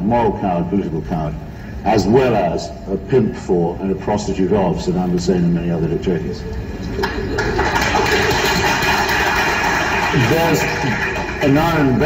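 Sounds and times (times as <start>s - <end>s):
man's voice: 0.0s - 6.5s, 10.2s - 12.0s
crowd noise: 4.0s - 12.0s.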